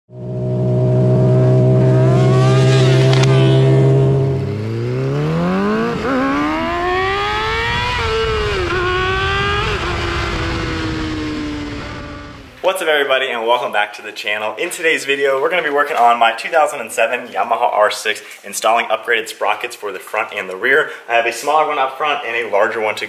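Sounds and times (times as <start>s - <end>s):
motorcycle engine revving: 0.1s - 12.6s.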